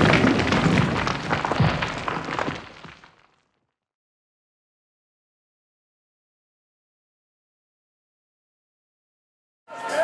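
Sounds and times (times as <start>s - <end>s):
stone crumbling: 0.0s - 3.8s.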